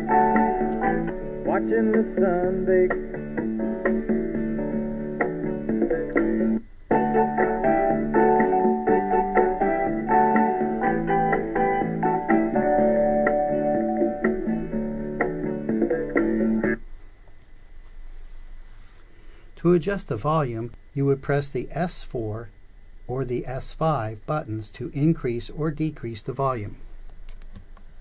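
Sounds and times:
recorded song with voice and guitar: 0.0 - 6.6.

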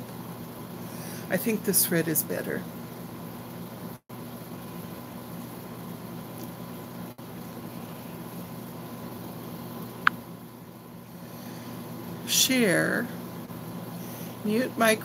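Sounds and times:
room noise hum and hiss: 0.0 - 15.0.

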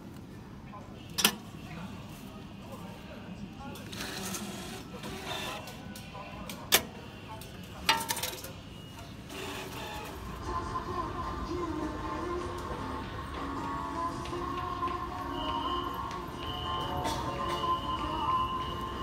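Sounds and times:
hubbub of voices: 0.0 - 19.0.

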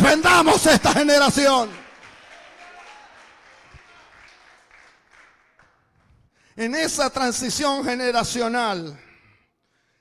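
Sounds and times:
faint congregation applause: 1.1 - 6.2.

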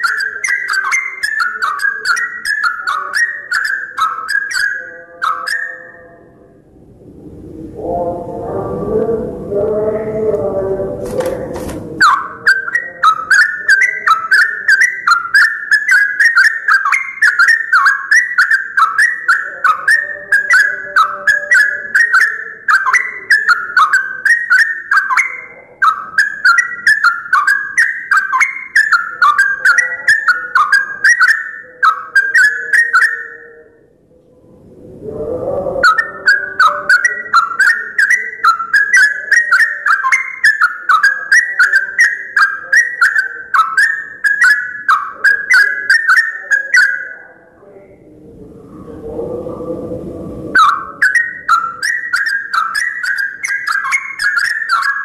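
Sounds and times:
bird chattering call: 0.0 - 5.9, 11.2 - 33.5, 35.8 - 47.1, 50.6 - 55.0.

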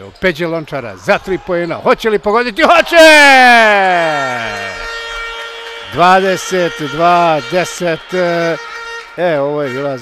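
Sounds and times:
descending arena horn tone: 3.1 - 10.0.

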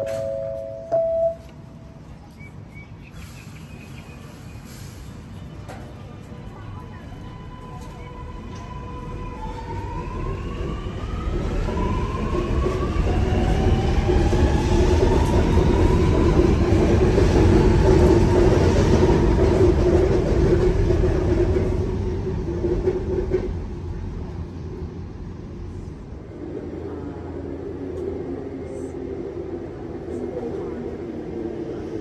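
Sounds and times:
train rumble: 0.0 - 32.0.

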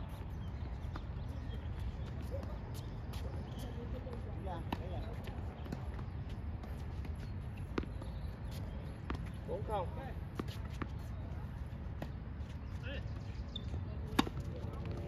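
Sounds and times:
tennis ball hits and bounces: 14.0 - 15.0.

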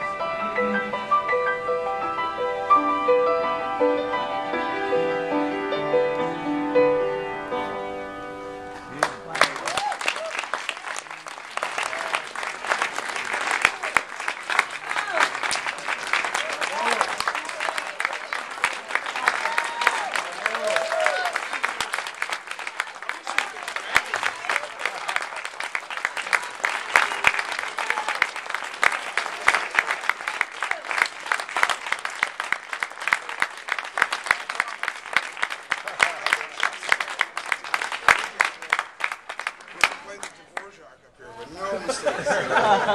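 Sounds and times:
audience applauding: 8.8 - 40.8, 42.1 - 42.9
voices calling out and cheering: 11.6 - 31.7.

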